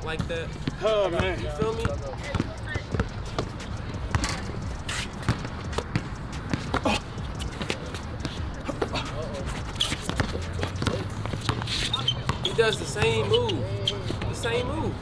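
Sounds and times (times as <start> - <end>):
basketball bouncing: 0.2 - 4.6, 5.2 - 8.4, 10.0 - 13.3
faint voices: 0.5 - 15.0.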